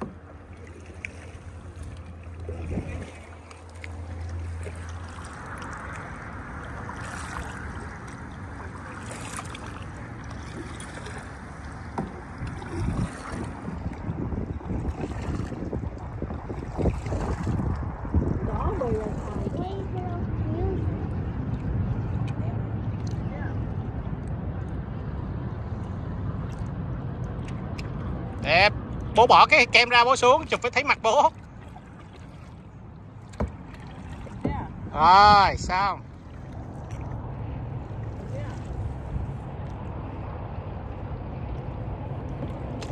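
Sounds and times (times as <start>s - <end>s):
kayak paddles splashing: 0.0s - 42.9s
water lapping against hull: 0.0s - 42.9s
wind on microphone: 2.4s - 3.4s, 12.1s - 29.2s.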